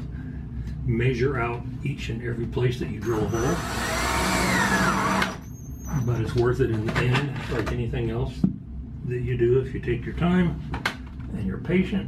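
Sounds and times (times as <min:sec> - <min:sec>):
cordless drill boring into wood: 0:03.0 - 0:05.5.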